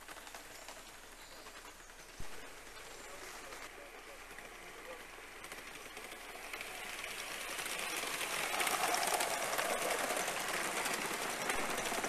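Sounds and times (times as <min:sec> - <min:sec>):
model train wheels clicking: 0:00.0 - 0:12.0.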